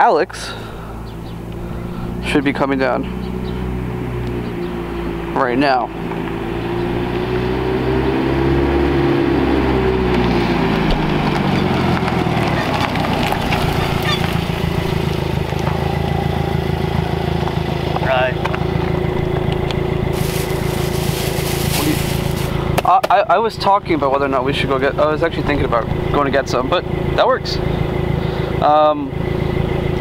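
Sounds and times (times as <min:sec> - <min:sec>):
car engine slowing and idling: 0:00.0 - 0:30.0.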